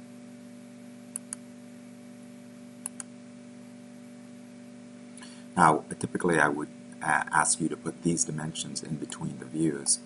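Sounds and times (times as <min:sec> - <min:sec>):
low electrical hum: 0:00.0 - 0:10.0
computer mouse click: 0:01.1 - 0:01.4, 0:02.8 - 0:03.1.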